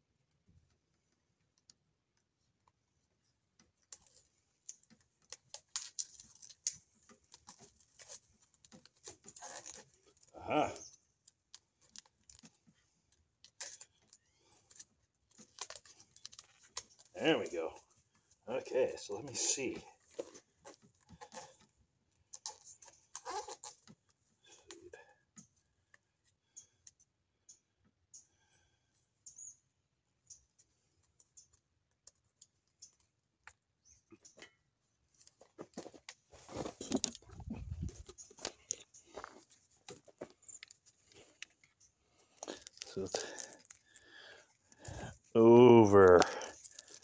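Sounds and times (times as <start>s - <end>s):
small clicks and rustles: 0.1s - 28.2s, 30.2s - 45.4s, 46.0s - 47.0s
tearing rustling: 5.2s - 10.9s, 35.2s - 45.3s, 46.1s - 47.0s.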